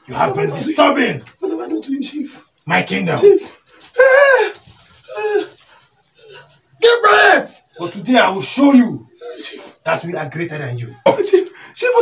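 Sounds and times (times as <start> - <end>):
man speaking: 0.0 - 5.5, 6.3 - 12.0
short voiced cry: 3.9 - 5.6.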